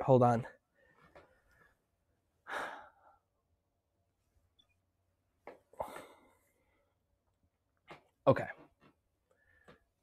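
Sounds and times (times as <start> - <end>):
person sighing: 2.4 - 3.2, 5.8 - 6.4.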